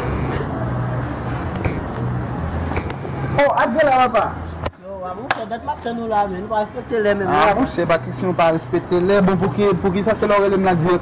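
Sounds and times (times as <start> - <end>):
men talking: 3.4 - 11.0.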